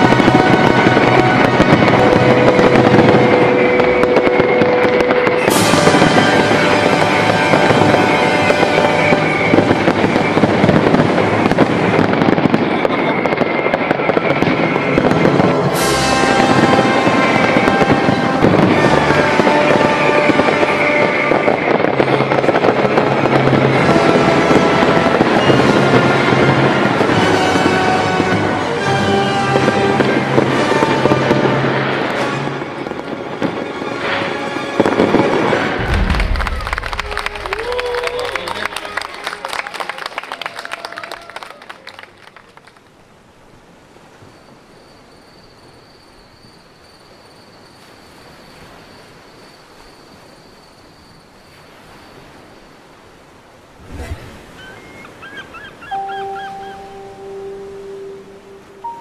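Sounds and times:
sharp bright firework bursts: 0:00.0 - 0:39.6
fireworks bursting and crackling: 0:00.0 - 0:43.0
music playing: 0:35.7 - 0:39.5, 0:56.0 - 0:59.0.

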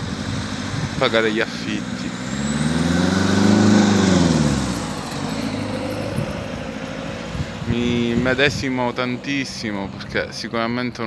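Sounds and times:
vehicle engine passing by: 0:00.0 - 0:10.2.

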